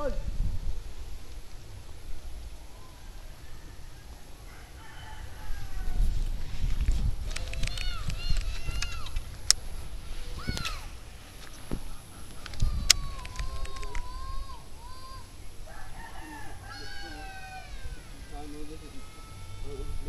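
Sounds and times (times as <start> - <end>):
rooster crowing: 2.7 - 6.3, 15.6 - 20.0
sharp clicks: 6.8 - 9.6, 11.4 - 14.1
chickens calling: 7.3 - 20.0.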